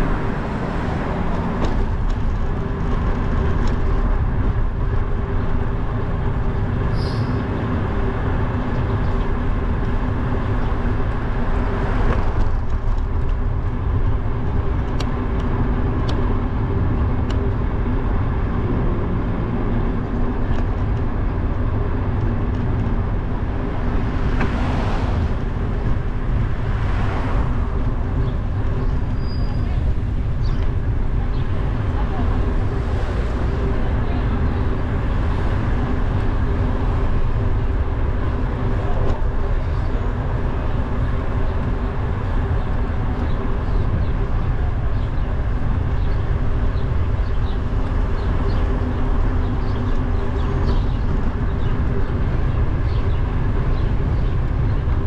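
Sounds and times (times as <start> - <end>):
street traffic rumble: 0.0 - 55.0
vehicles passing: 0.0 - 55.0.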